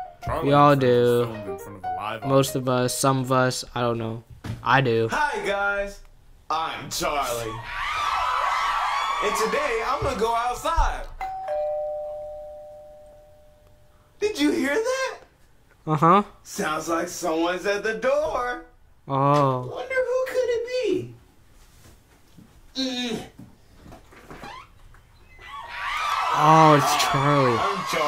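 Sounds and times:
person speaking: 0.2 - 5.5
two-note doorbell chime: 11.2 - 13.9
faint voice humming mm: 22.7 - 23.4.

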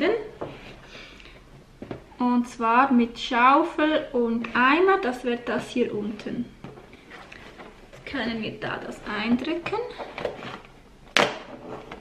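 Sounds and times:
cardboard scraping and handling: 6.8 - 8.1, 9.9 - 10.8, 11.5 - 12.0.

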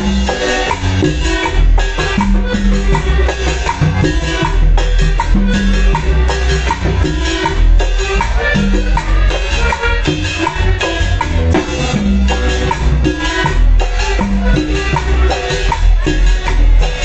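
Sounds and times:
live band playing: 0.0 - 17.0
percussion beat: 0.0 - 17.0
steady bass line: 0.0 - 17.0.

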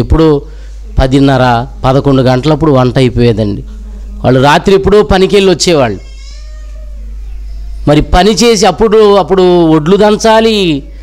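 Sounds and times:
man speaking over loudspeaker: 4.2 - 6.0, 7.9 - 10.9.

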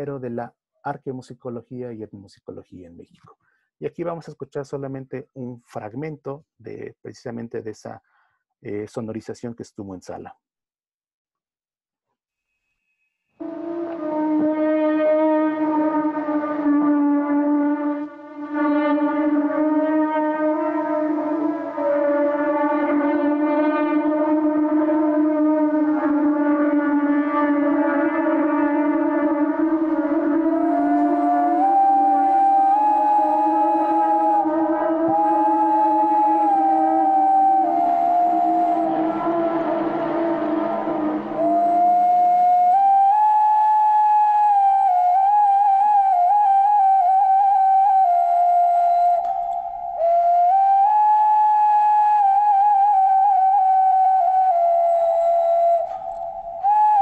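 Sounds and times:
flute-like held notes: 13.4 - 57.0
low wind instrument drone: 13.4 - 57.0.

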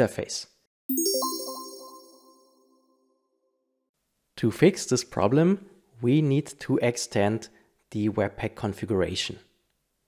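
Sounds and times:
bell-like chime: 0.9 - 2.9.

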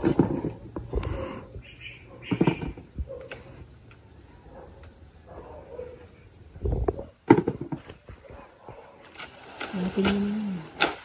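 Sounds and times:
leaves and branches rustling: 5.3 - 11.0.

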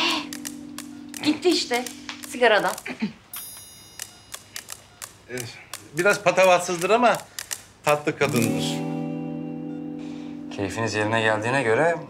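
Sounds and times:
high-pitched bell ring: 3.4 - 4.5
light clicks: 4.0 - 7.7.

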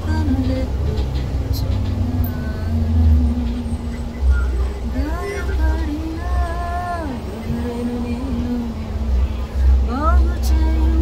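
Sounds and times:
bus engine rumble: 0.0 - 11.0
road noise: 0.0 - 11.0.

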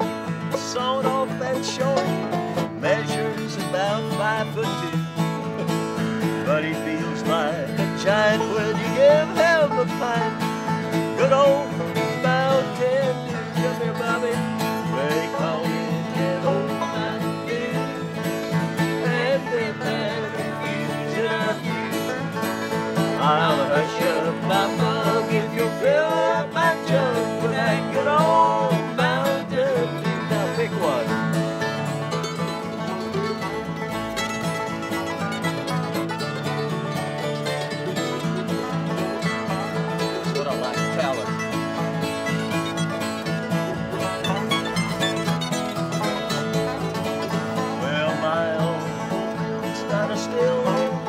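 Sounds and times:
acoustic guitar: 0.0 - 51.0
banjo: 0.0 - 51.0
mandolin: 0.0 - 51.0.

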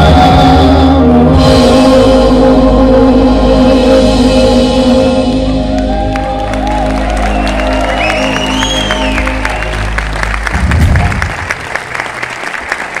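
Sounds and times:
rock band playing chord: 0.0 - 11.4
audience applauding: 5.7 - 13.0
person whistling: 7.2 - 9.9.

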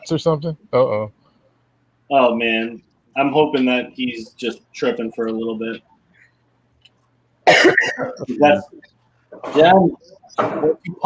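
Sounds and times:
person coughing loudly: 7.5 - 8.3.

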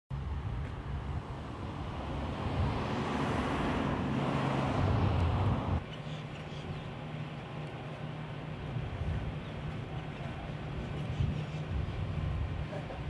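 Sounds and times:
road vehicle passing: 0.2 - 13.0.

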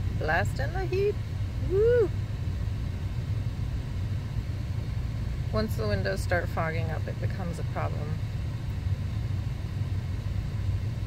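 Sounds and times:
car heater blowing: 0.0 - 11.0.

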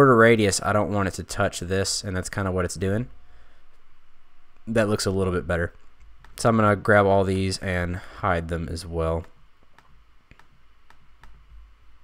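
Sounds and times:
low steady hiss: 0.0 - 12.0
computer mouse clicks: 9.2 - 11.5.

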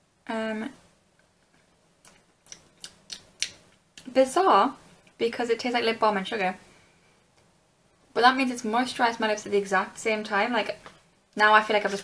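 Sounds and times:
lips smacking: 2.0 - 4.1.

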